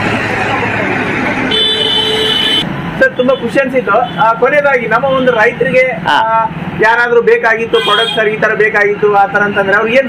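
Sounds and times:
loud street traffic: 0.0s - 10.0s
vehicle horn: 1.5s - 2.6s, 7.8s - 8.2s.

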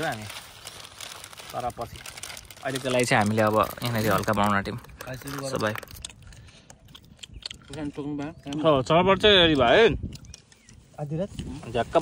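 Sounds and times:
faint crinkling rustle: 0.0s - 7.1s.

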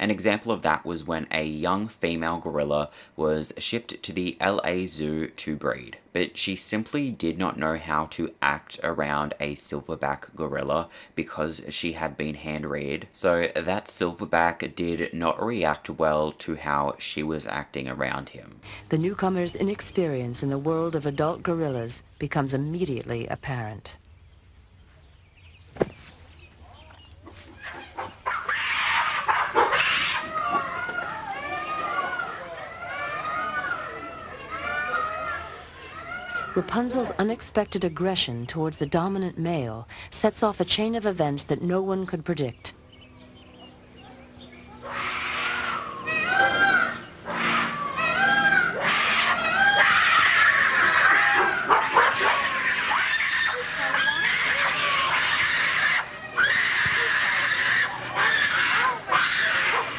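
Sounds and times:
gorilla gliding calls: 26.7s - 36.7s, 44.0s - 59.9s
gorillas screaming: 27.5s - 37.2s, 44.6s - 59.9s.

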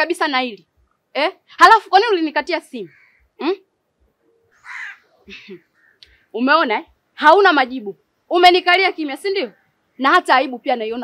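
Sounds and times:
crow cawing: 2.9s - 3.4s, 4.6s - 6.0s.

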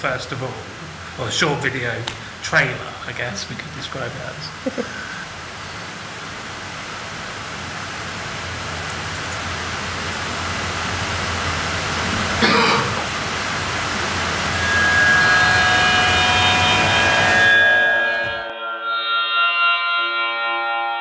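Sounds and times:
soundtrack hiss: 0.0s - 18.6s
person coughing: 12.4s - 13.0s.

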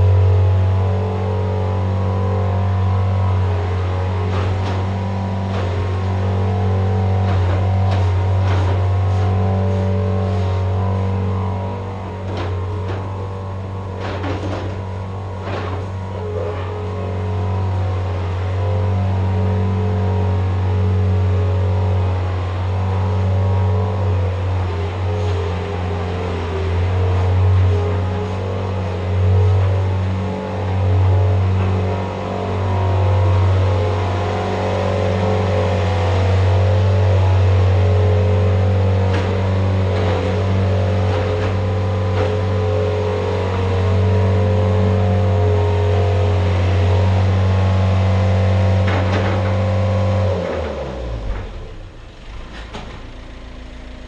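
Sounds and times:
skid steer engine running: 0.0s - 54.0s.

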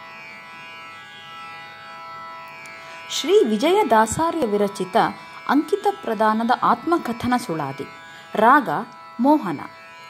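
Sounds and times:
tanpura drone: 0.0s - 10.0s.

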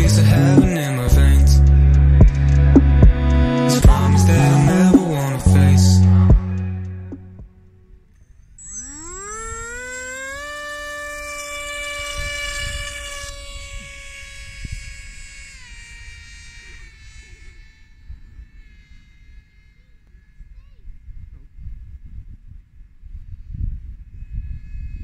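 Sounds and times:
electric motor and propeller whine: 0.0s - 22.4s, 23.0s - 25.0s.

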